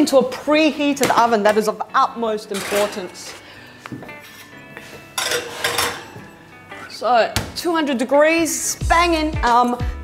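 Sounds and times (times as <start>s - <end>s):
faint background music: 0.0s - 10.0s
metal muffin tins clattering: 2.4s - 3.5s, 5.1s - 6.3s.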